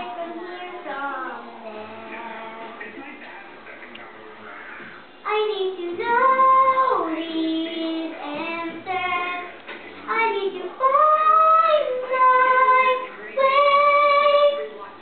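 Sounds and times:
girl singing: 0.0 - 2.8, 5.2 - 14.7.

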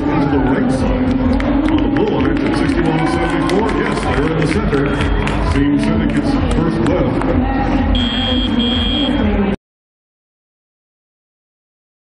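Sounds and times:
arena crowd noise: 0.0 - 9.6
electronic buzzer tone: 7.9 - 9.3.

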